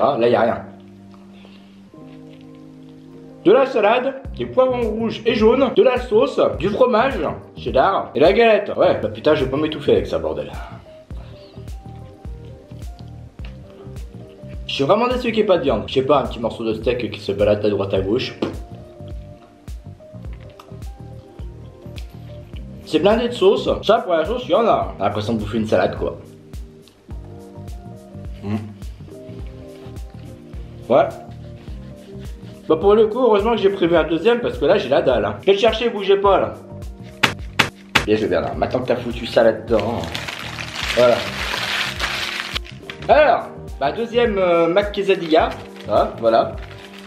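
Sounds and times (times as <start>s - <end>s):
background music with steady beat: 0.0s - 47.0s
wet squishy chewing: 20.2s - 22.8s
paper wrapper rustling: 39.7s - 43.1s, 44.6s - 47.0s.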